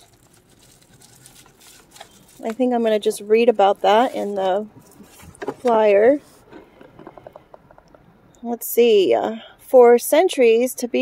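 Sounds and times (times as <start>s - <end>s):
paper rustling and crinkling: 0.0s - 6.5s.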